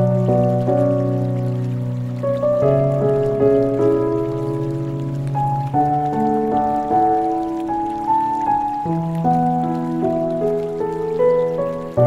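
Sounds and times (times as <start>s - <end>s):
slow calm instrumental music: 0.0s - 12.0s
steady rain: 0.0s - 12.0s.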